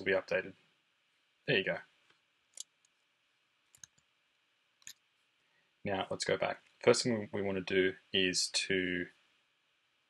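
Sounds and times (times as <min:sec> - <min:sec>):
computer mouse clicks: 0:02.1 - 0:03.0, 0:03.7 - 0:04.1, 0:04.8 - 0:05.0.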